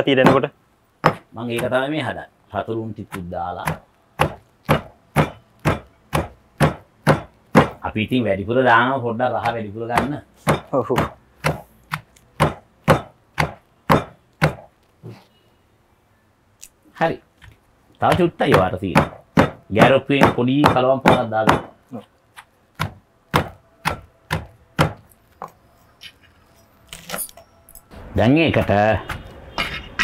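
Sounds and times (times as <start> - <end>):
pestle pounding in stone mortar: 0.1 - 1.9, 3.0 - 7.8, 9.3 - 14.7, 18.0 - 21.8, 22.4 - 25.0, 28.5 - 30.0.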